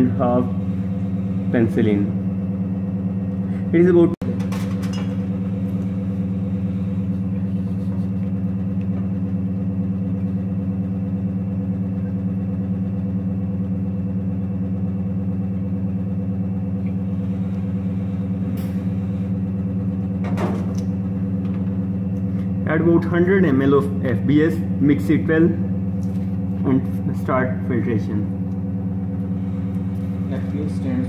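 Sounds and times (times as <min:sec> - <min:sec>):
blower humming: 0:00.0 - 0:31.0.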